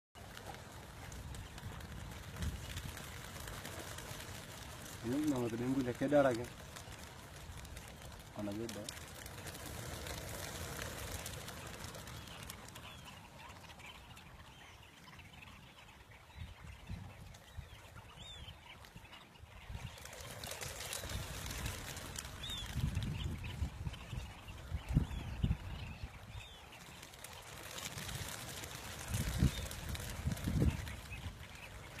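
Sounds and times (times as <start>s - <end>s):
sandgrouse chirping calls: 0.2s - 32.0s.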